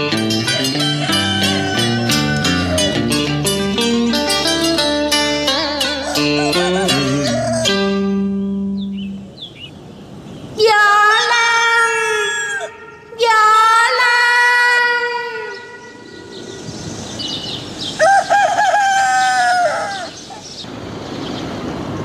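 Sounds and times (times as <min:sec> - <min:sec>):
high drawn-out vocal cries: 0:00.4 - 0:03.3, 0:05.5 - 0:08.1, 0:10.6 - 0:16.7.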